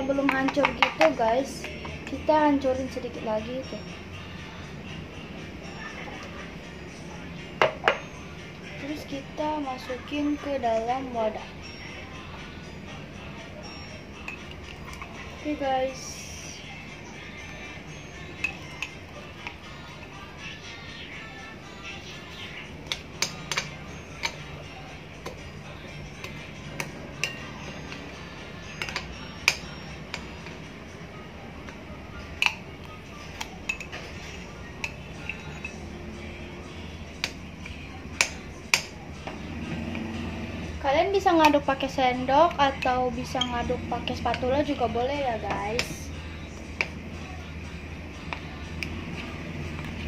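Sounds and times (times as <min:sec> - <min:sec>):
metal spoon clinking on glass: 0:14.2 - 0:15.1, 0:18.4 - 0:19.0, 0:26.2 - 0:28.0, 0:28.7 - 0:30.3, 0:33.4 - 0:34.1, 0:34.8 - 0:35.8.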